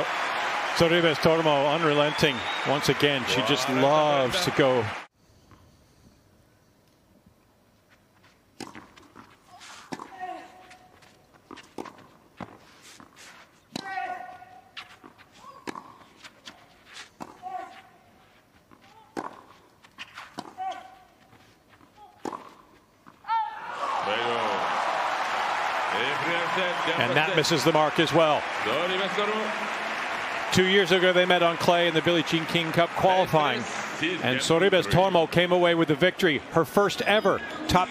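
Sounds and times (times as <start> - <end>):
crowd applause: 0.0 - 5.1, 23.7 - 36.5
crowd cheering: 0.0 - 5.1, 23.4 - 37.9
racquet hitting tennis ball: 19.0 - 21.0, 22.2 - 22.7.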